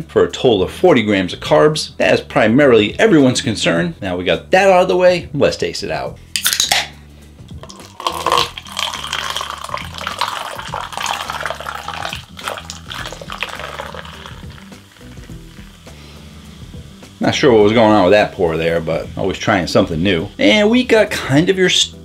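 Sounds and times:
background music: 0.0 - 22.0
can cracking open: 6.4 - 6.9, 7.6 - 15.4
fizzy drink pouring: 6.4 - 6.9, 7.5 - 15.9.

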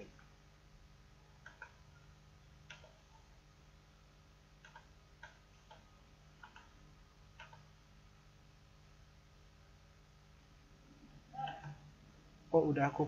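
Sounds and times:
low steady hum: 0.0 - 13.0
computer mouse clicks: 1.4 - 3.2, 4.6 - 7.7.

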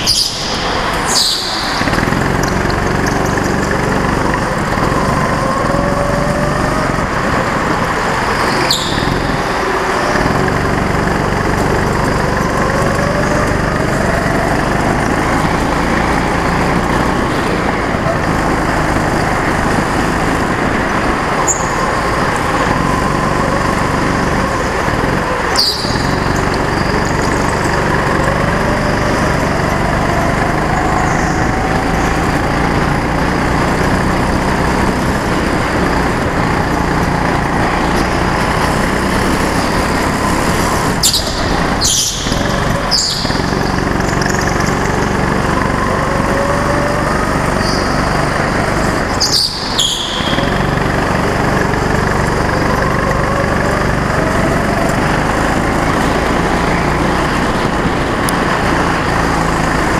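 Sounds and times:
go-kart engine running: 0.0 - 59.9.

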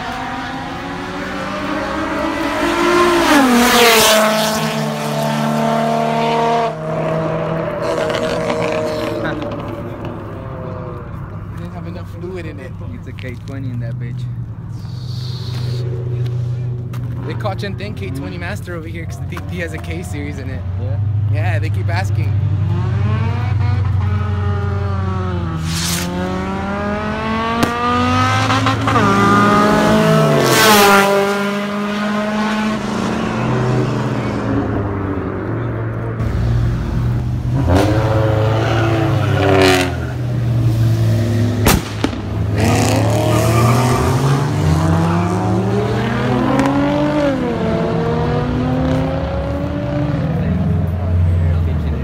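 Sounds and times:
car engines accelerating hard: 0.0 - 52.0
short sharp noises: 25.5 - 26.4.

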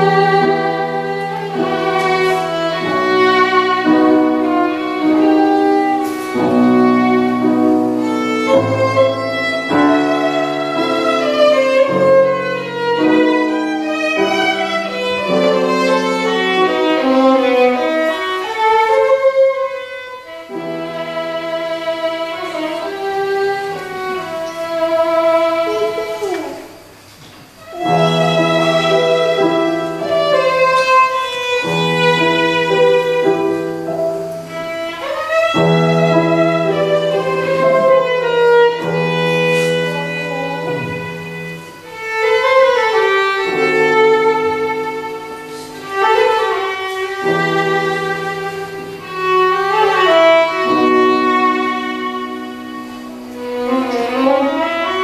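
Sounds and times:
piano accompaniment: 0.0 - 55.0
violin melody: 0.0 - 55.0.

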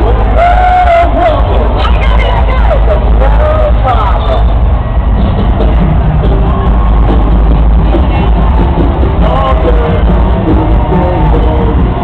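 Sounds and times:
crowd calling out: 0.0 - 12.0
low rumble: 0.0 - 12.0.

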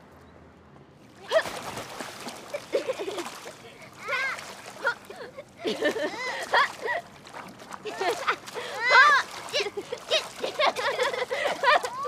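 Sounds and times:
pool water splashing: 1.0 - 12.0
children calling out: 4.0 - 5.3, 7.9 - 10.3.

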